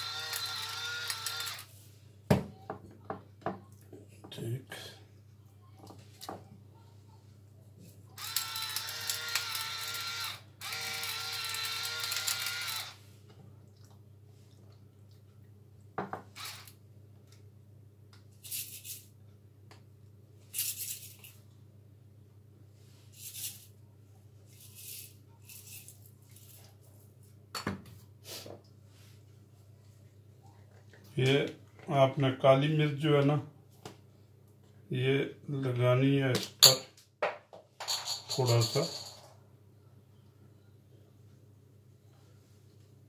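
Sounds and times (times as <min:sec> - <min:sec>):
electric pepper mill grinding: 0:00.0 - 0:01.7, 0:08.2 - 0:13.0, 0:16.3 - 0:16.8.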